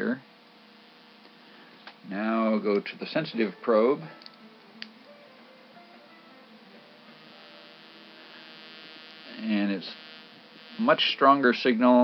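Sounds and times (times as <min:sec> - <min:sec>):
faint electrical buzz: 0:00.0 - 0:12.0.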